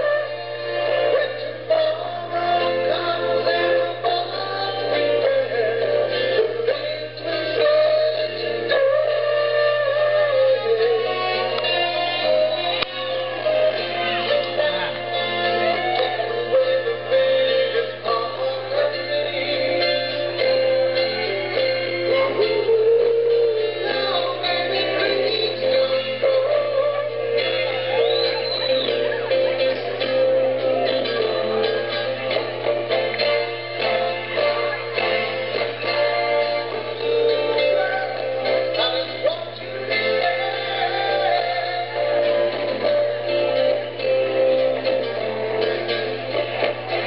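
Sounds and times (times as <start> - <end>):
lead vocal singing: 0.0 - 31.8, 36.4 - 43.2
live rock band playing: 0.0 - 47.0.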